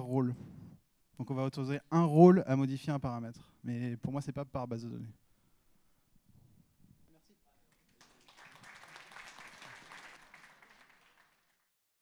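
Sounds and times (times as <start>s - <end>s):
audience applauding: 7.7s - 11.7s.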